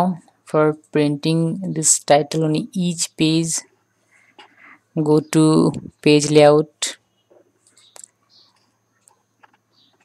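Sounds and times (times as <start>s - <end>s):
faint breaths: 3.8s - 5.0s.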